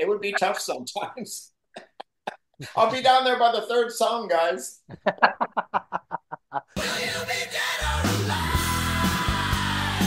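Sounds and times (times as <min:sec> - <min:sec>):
person laughing: 0:01.8 - 0:02.9, 0:04.9 - 0:06.8
rock music: 0:06.8 - 0:10.0.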